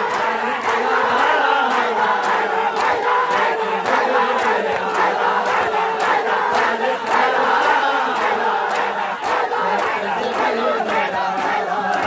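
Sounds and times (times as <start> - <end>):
crowd slapping chests: 0.0 - 12.0
men chanting: 0.0 - 12.0.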